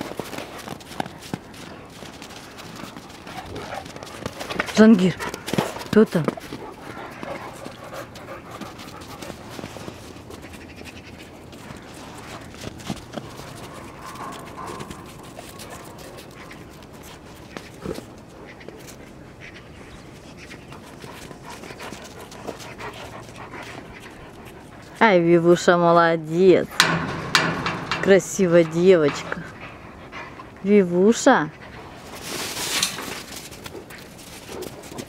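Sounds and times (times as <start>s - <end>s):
dog panting: 0.0s - 19.5s, 20.4s - 25.3s, 26.8s - 35.0s.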